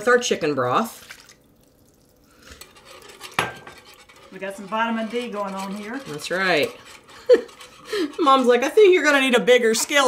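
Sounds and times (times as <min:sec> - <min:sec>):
milk pouring into a skillet: 0:00.8 - 0:04.4.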